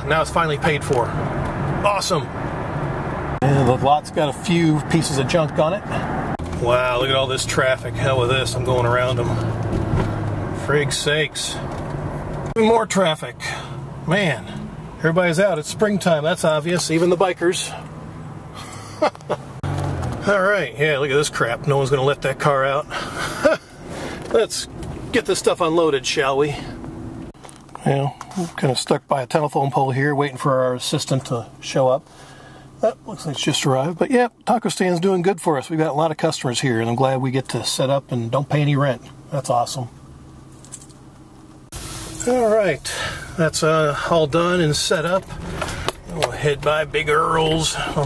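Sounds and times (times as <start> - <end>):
van engine and road noise: 0.0 - 48.0.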